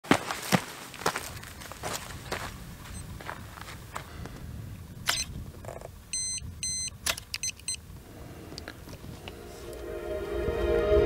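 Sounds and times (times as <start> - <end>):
electronic beeps: 6.1 - 7.8
rapid short beeps: 6.2 - 7.8.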